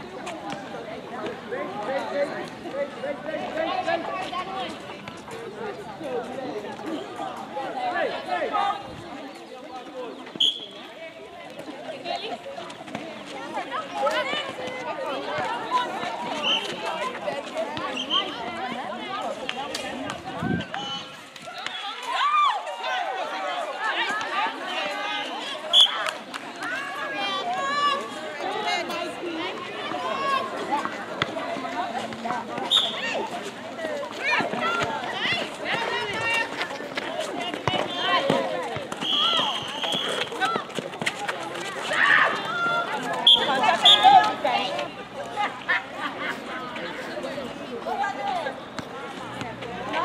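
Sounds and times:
players calling and shouting: 0.0 - 50.0
running footsteps: 26.0 - 44.9.

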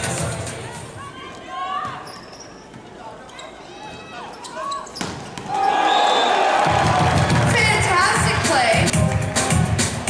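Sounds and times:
crowd noise: 0.0 - 10.0
shoes squeaking on court: 1.3 - 5.5.

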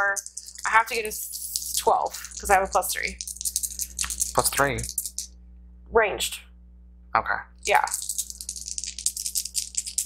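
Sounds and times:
dice rattling in the hand: 0.0 - 5.3, 7.6 - 10.0.

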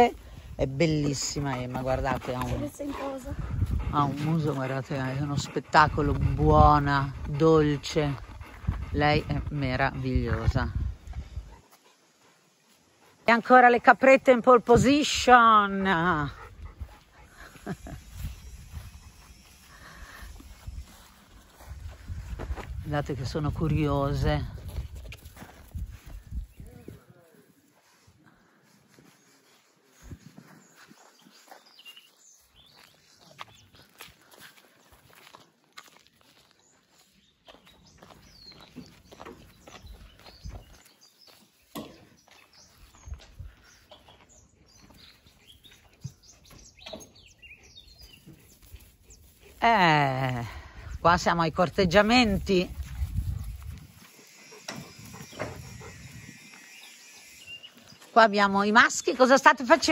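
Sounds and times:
footsteps on dry grass: 15.7 - 59.9.

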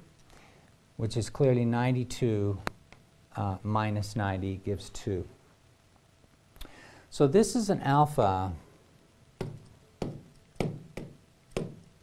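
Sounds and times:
stylus tapping on glass screen: 9.4 - 11.9.

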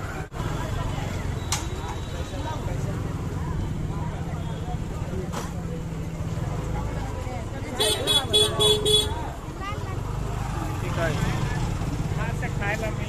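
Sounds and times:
chatter of voices: 0.0 - 13.0
low rumble of traffic: 0.0 - 13.0.

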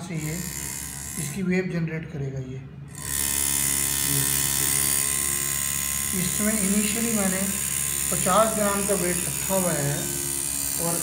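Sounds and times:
tuning fork electric buzz: 2.9 - 11.0.

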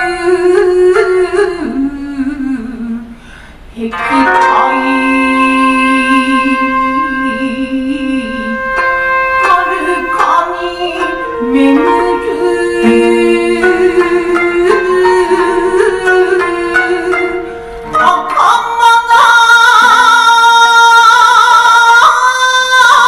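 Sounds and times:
plucked-string accompaniment: 3.8 - 23.0.

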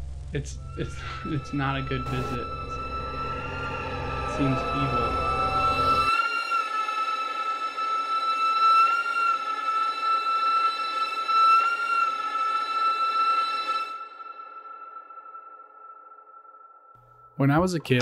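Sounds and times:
high-pitched drone: 0.0 - 7.4.

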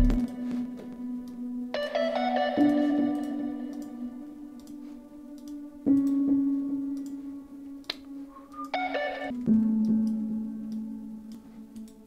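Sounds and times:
sustained synth chords: 0.0 - 12.0.

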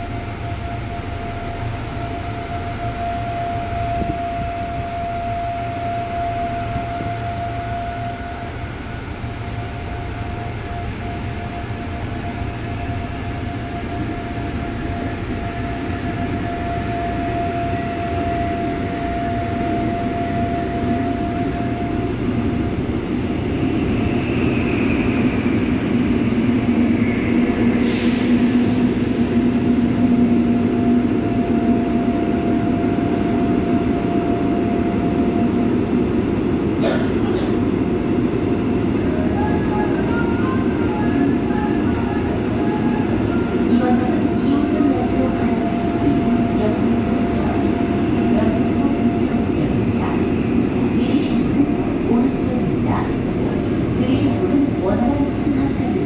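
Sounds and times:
subway train running in tunnel: 0.0 - 56.0.

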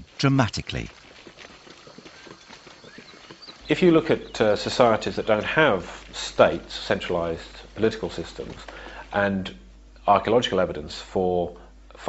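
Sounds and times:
low background hiss: 0.0 - 12.0
footfalls on leaf litter: 0.9 - 9.2.

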